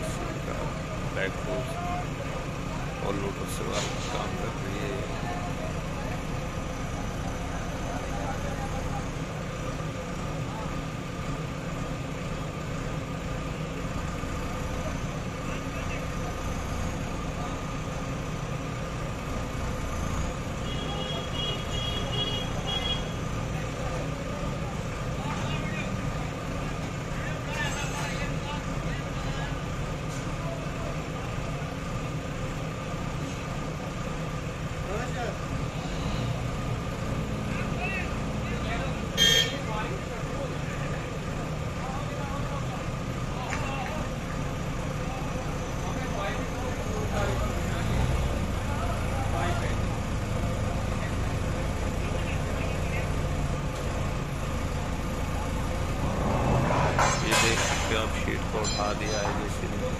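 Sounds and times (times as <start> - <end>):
diesel engine running: 0.0 - 59.9
sharp metal clank: 56.8 - 59.4.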